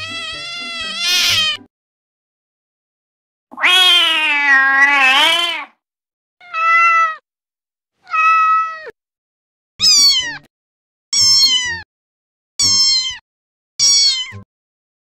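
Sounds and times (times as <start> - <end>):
cat meowing: 0.0 - 1.7, 3.5 - 5.8, 6.4 - 7.2, 8.0 - 9.0, 9.8 - 10.5, 11.2 - 11.8, 12.6 - 13.2, 13.8 - 14.4
harsh cat cry: 0.0 - 1.7, 3.5 - 5.8, 6.4 - 7.2, 8.0 - 9.0, 9.8 - 10.5, 11.2 - 11.8, 12.6 - 13.2, 13.8 - 14.4.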